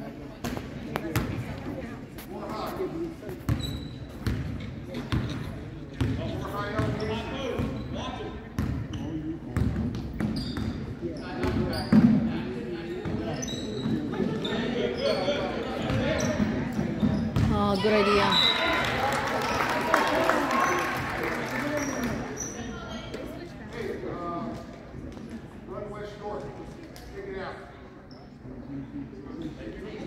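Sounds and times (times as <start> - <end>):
basketball bouncing on court: 9.5 - 10.8
spectators talking: 10.4 - 30.0.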